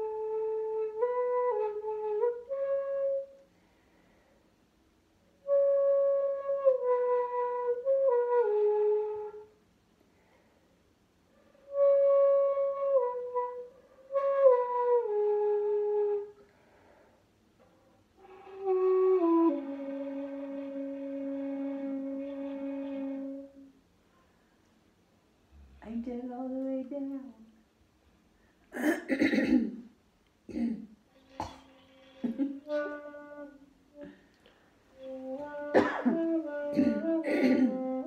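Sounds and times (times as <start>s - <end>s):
bamboo flutes playing: 0.0s - 3.5s, 5.4s - 9.6s, 11.7s - 16.9s, 18.2s - 23.8s, 32.2s - 34.2s, 34.8s - 38.0s.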